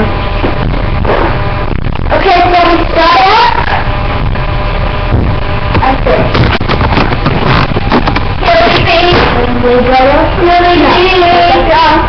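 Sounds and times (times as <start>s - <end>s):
distorted knocks and thumps: 0.0s - 2.4s, 3.6s - 11.4s
girl's voice: 2.1s - 3.6s, 8.4s - 12.0s
rough rustling noise: 5.3s - 9.5s.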